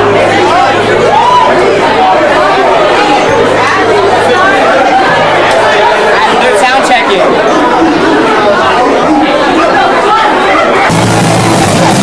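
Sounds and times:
crowd chatter and shouting: 0.0 - 12.0
band playing: 10.9 - 12.0.

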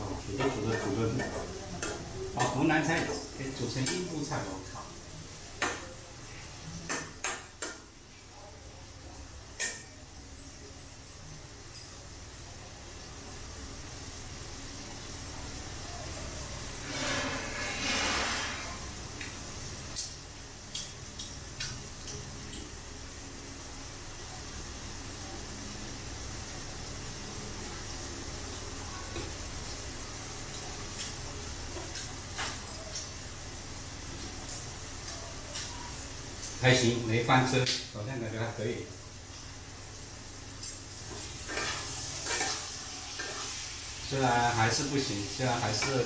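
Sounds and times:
food sizzling in a wok: 0.0 - 46.0.

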